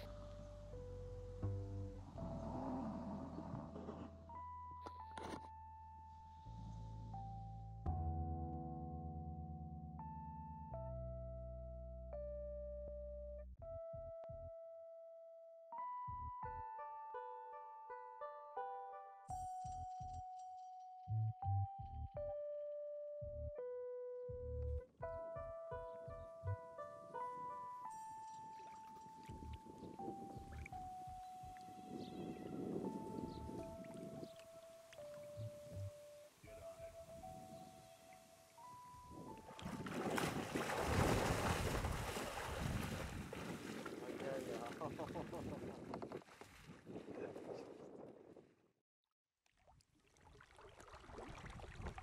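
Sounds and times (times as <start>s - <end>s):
simple melody with light beat: 4.2s - 39.8s
water sloshing around kayak: 39.5s - 48.0s, 49.6s - 52.0s.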